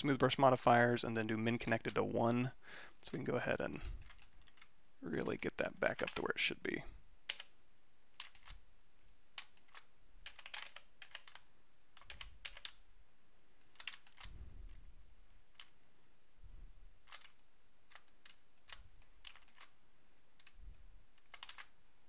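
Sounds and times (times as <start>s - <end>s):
keyboard keys clicking: 9.4s - 11.4s, 12.0s - 12.8s, 13.7s - 14.4s, 17.1s - 19.8s, 21.2s - 21.7s.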